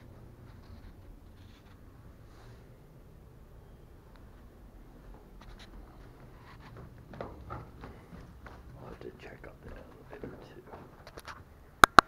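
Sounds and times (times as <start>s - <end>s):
soft footsteps on carpeted stairs: 3.8s - 11.5s
scuffs and rustling: 4.2s - 11.5s.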